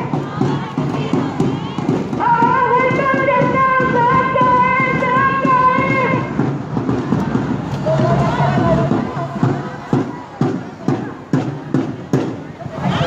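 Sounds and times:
crowd of marchers' voices: 0.0s - 13.0s
drum beaten at a steady pulse: 0.0s - 13.0s.

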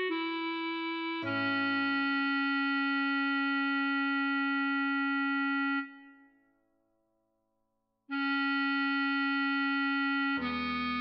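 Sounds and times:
bass clarinet notes: 0.0s - 6.2s, 8.1s - 11.0s.

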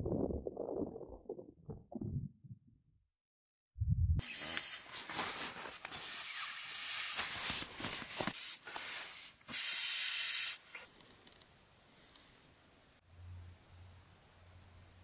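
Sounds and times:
nylon fabric crinkling: 4.5s - 6.2s, 7.1s - 8.4s
air hissing: 8.4s - 10.8s.

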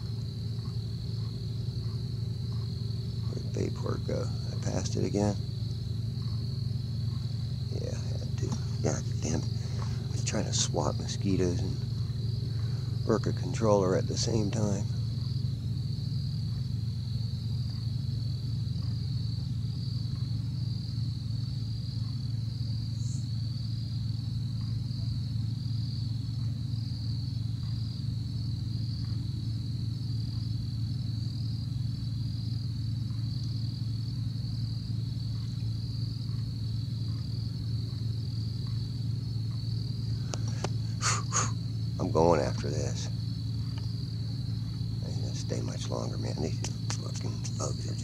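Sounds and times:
crickets trilling: 0.0s - 48.0s
steady low hum: 0.0s - 48.0s.

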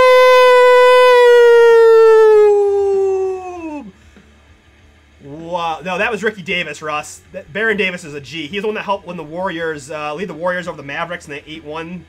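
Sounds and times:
man yelling: 0.0s - 3.9s.

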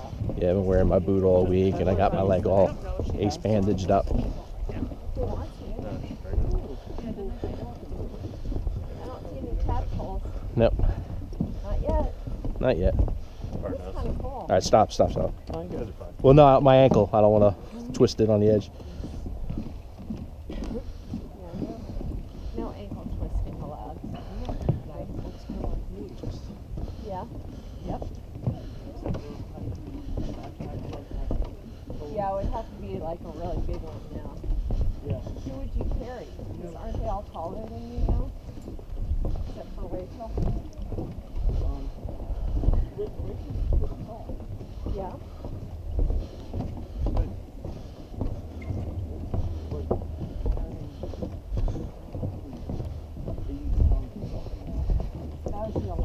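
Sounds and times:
footsteps on wooden boardwalk: 0.0s - 56.0s
wind rumbling on microphone: 0.0s - 56.0s.

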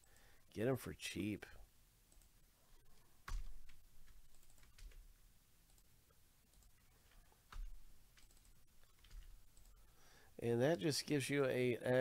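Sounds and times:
computer keyboard typing: 3.2s - 5.1s, 6.5s - 9.8s.

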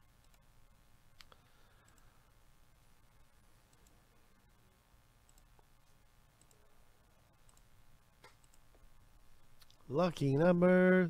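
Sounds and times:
computer mouse clicking: 0.2s - 0.4s, 3.7s - 4.0s, 5.3s - 5.7s, 6.4s - 6.6s, 7.4s - 8.8s.

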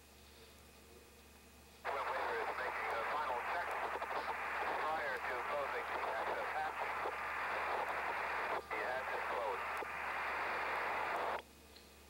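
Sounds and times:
steady low hum: 0.0s - 12.0s
radio static: 1.9s - 11.4s
radio voice transmission: 1.9s - 11.4s.

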